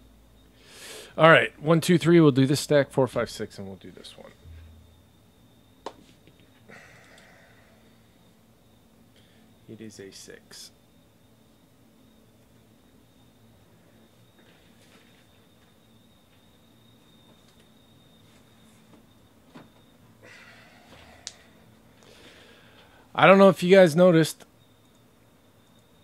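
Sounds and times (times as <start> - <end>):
faint high-pitched whine: 0.0 - 26.0.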